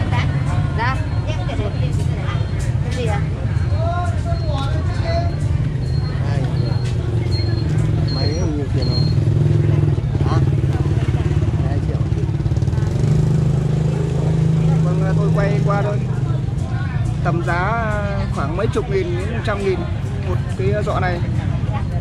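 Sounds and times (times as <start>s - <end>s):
faint chatter: 0.0s - 22.0s
short high beeps: 4.3s - 9.3s.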